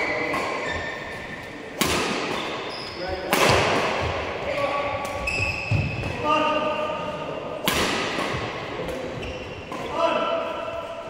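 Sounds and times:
racket hitting shuttlecock: 1.4 - 2.7, 3.3 - 4.3, 7.6 - 10.5
short squeak-like tones: 5.2 - 5.8.

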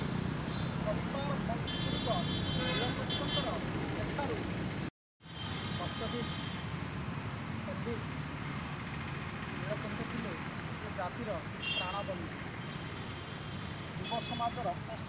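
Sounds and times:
steady traffic noise: 0.0 - 15.0.

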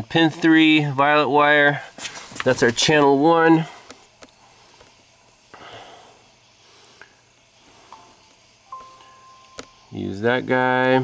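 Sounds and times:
soft rustle: 2.0 - 2.8
faint steady tone: 3.4 - 11.0.

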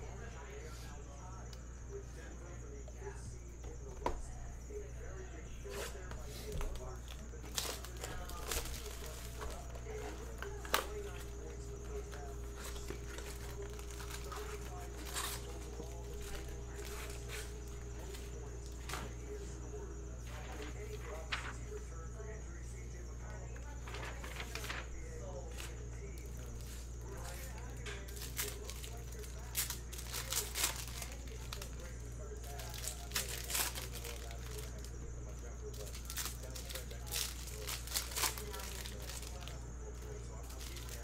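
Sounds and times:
low steady hum: 0.0 - 41.0
cardboard box and foil packs handled: 5.6 - 19.6, 23.7 - 41.0.

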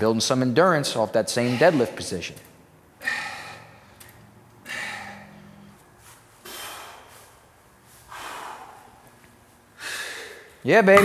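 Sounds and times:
man exhaling forcefully: 3.0 - 3.8, 4.6 - 5.5, 6.4 - 7.4, 8.1 - 9.0.

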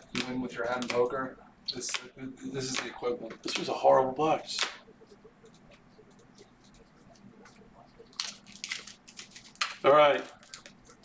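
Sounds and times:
wrapper crinkling and tearing: 8.0 - 11.0.

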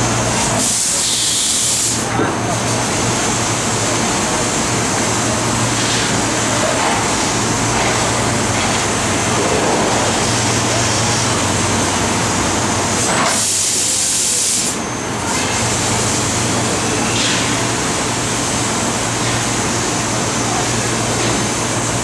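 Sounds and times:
laser cutter humming and hissing: 0.0 - 22.0.

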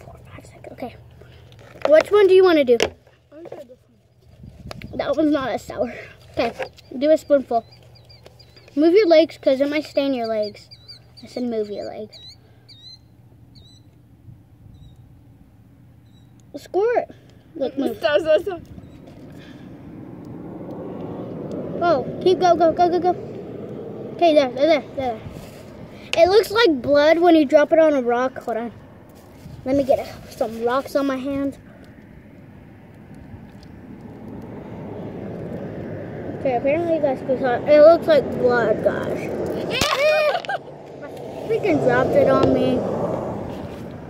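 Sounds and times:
motor vehicle engine rumble: 0.0 - 44.0
small bird chirping: 6.2 - 15.3, 15.9 - 16.6, 18.4 - 19.4.

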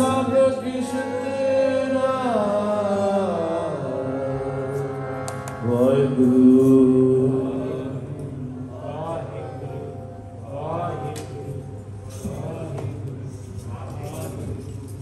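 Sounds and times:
harmonium: 0.0 - 12.2
men chanting a hymn: 0.0 - 14.4.

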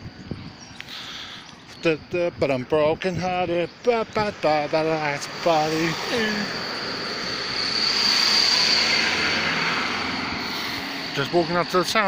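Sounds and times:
van driving past: 3.8 - 12.0.

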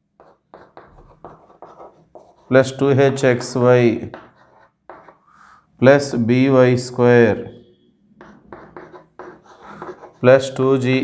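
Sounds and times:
chalk scratching on chalkboard: 0.2 - 5.4, 8.2 - 10.6.

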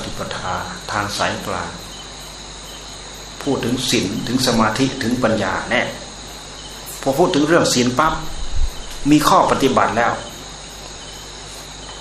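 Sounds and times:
man talking: 0.0 - 1.9, 3.4 - 6.1, 7.0 - 8.4, 9.0 - 10.4
crickets chirring: 0.0 - 12.0.

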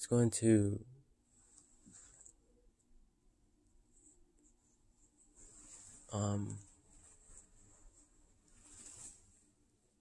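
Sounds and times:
faint high-pitched hiss: 0.0 - 10.0.

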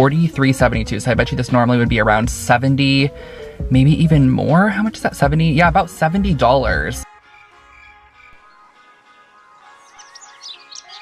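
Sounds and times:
soft background music: 0.0 - 11.0
birds chirping: 3.0 - 11.0.

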